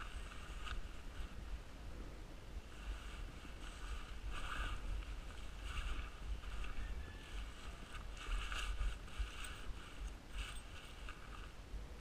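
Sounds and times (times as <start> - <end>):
harness rustling and scuffing on dirt: 0.0 - 1.7, 2.6 - 12.0
wind rumbling on microphone: 0.0 - 12.0.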